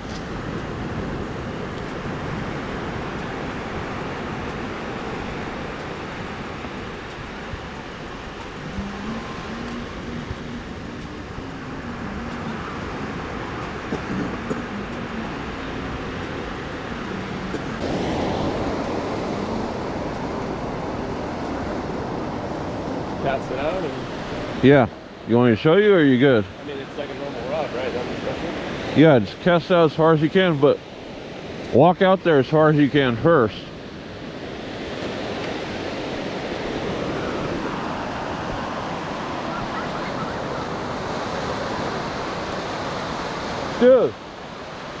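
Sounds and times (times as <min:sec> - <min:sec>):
ocean surf: 0:00.0 - 0:45.0
wind: 0:00.0 - 0:45.0
faint voices: 0:08.5 - 0:17.8, 0:38.7 - 0:41.8.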